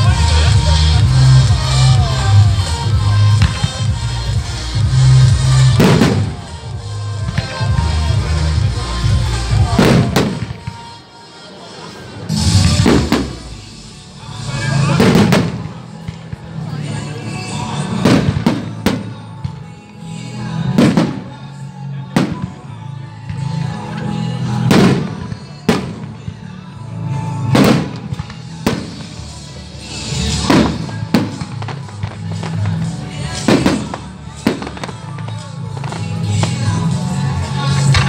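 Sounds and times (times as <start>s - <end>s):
music: 0.0s - 38.0s.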